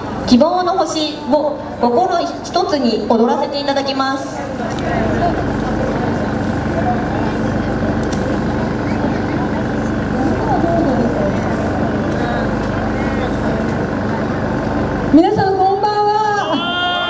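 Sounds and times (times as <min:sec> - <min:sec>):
faint crowd chatter: 0:00.0 - 0:17.0
generator humming: 0:00.0 - 0:17.0.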